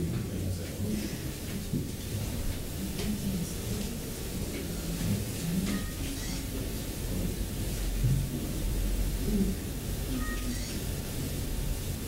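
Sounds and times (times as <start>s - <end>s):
faint murmuring voices: 0.0s - 11.3s.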